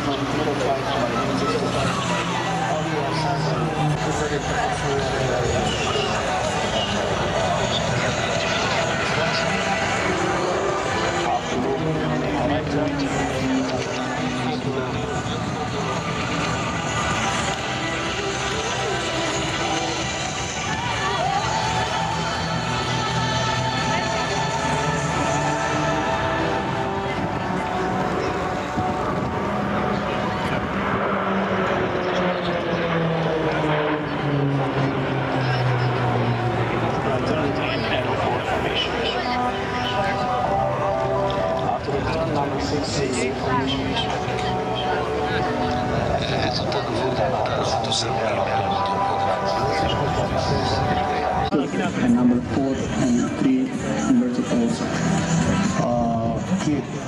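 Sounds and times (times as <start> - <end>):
propeller planes flying past: 0.0 - 57.0
turboprop engines droning: 0.0 - 57.0.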